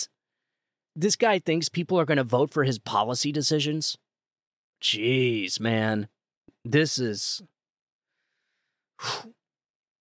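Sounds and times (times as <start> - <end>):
man's sharp breath: 8.1 - 9.4.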